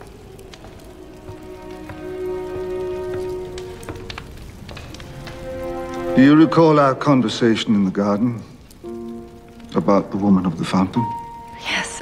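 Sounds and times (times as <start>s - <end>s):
light crackling: 0.0s - 12.0s
soft sustained orchestral chords: 1.1s - 4.2s, 5.0s - 8.0s.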